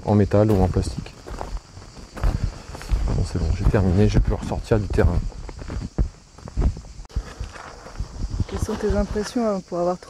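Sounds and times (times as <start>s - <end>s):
footsteps: 0.4s - 9.4s.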